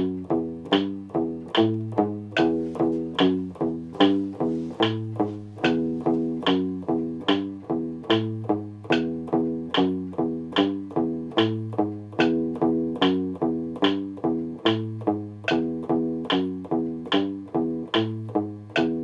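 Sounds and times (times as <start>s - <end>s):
electric guitar picking single notes: 0.0s - 19.0s
metronome clicks: 0.0s - 19.0s.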